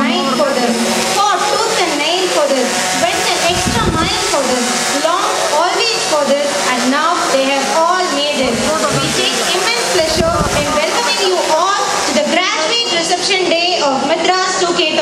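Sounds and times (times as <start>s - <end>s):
steady whirring noise: 0.0s - 15.0s
woman speaking over public address: 0.0s - 15.0s.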